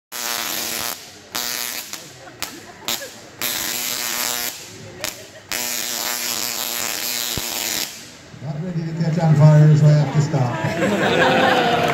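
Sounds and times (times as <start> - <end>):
tesla coil arcs buzzing: 0.1 - 8.3.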